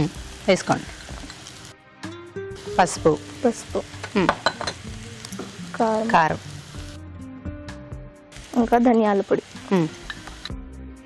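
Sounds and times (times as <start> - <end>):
onions sizzling in oil: 0.0 - 1.8, 2.5 - 7.1, 8.3 - 10.8.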